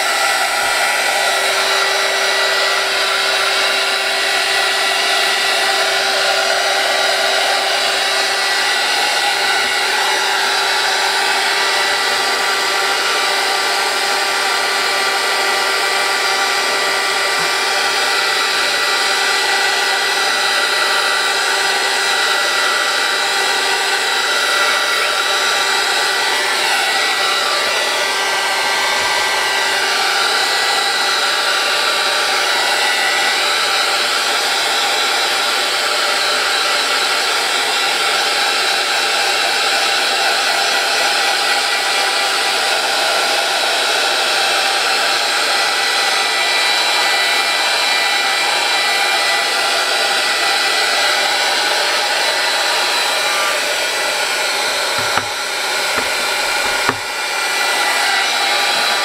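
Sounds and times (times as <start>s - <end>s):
heat tool blowing hot air: 0.0s - 59.0s.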